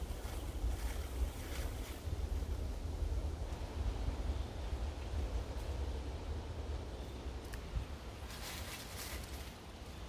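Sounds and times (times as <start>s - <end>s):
wind buffeting microphone: 0.0s - 9.4s.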